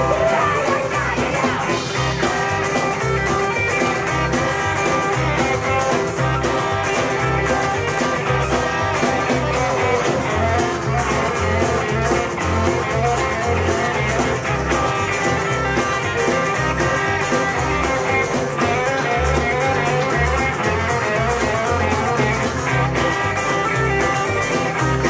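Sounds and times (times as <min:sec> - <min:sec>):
live rock band playing: 0:00.0 - 0:25.0.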